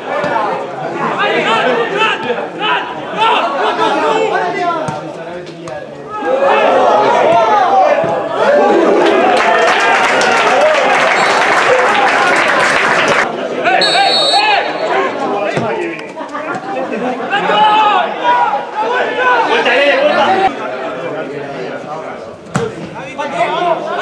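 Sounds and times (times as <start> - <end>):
crowd shouting and talking: 0.0 - 24.0
short high whistle blast: 13.8 - 15.0.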